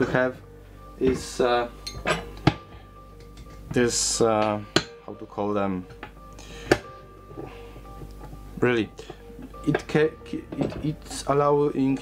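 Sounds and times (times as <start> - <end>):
faint steady background tones: 0.0 - 12.0.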